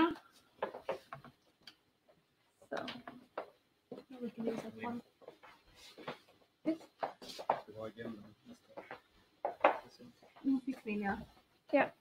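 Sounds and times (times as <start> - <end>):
people speaking: 4.1 - 5.0, 7.7 - 8.6, 9.8 - 11.9.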